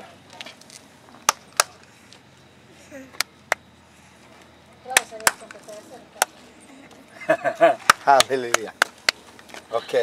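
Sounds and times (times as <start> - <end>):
person laughing: 7.1 - 7.9.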